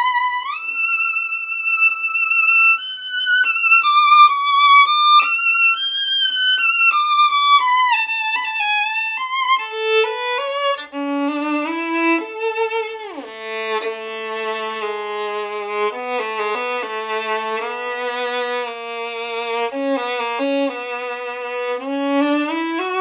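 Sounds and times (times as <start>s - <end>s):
solo violin melody with vibrato: 0.0s - 23.0s.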